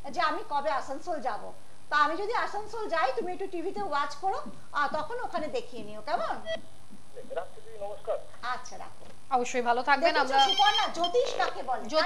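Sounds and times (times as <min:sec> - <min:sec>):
pulsed telephone ring tone: 0:10.2 - 0:11.4.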